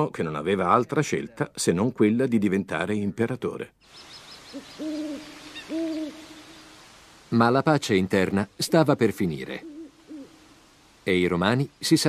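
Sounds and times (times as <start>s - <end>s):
owl hooting: 3.9s - 7.0s, 9.6s - 10.6s.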